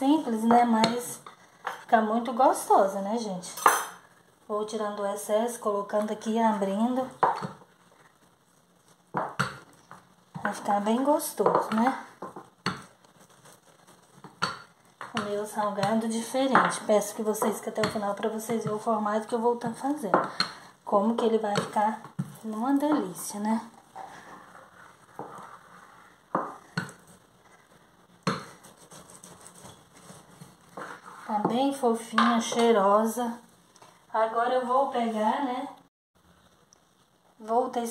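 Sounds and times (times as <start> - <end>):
rolling pin rolling dough: 5.8 - 32.9.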